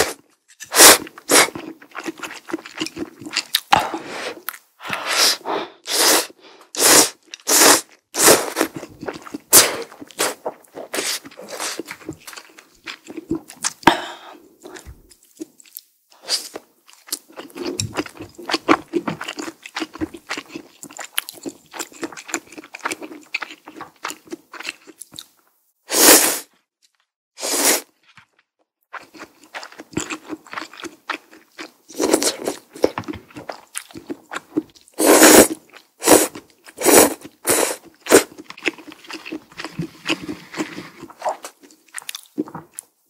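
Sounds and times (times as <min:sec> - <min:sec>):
noodles slurped: 0:00.0 - 0:12.4, 0:35.0 - 0:42.7
chewing with slight crunch: 0:00.1 - 0:03.8, 0:07.2 - 0:13.8, 0:14.6 - 0:25.4, 0:28.0 - 0:42.9.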